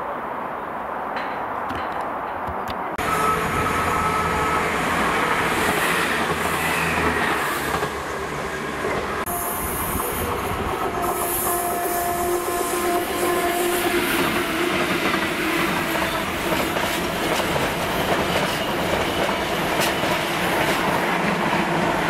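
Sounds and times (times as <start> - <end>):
diesel locomotive tone: 3.0 - 22.0.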